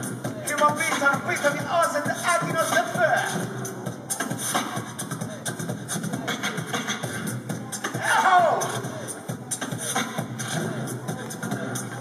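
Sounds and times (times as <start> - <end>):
beatboxing: 0.0 - 12.0.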